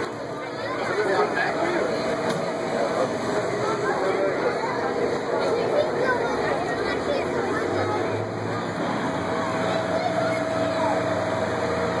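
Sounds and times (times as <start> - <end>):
people talking: 0.0 - 12.0
vehicle engine idling: 0.0 - 12.0.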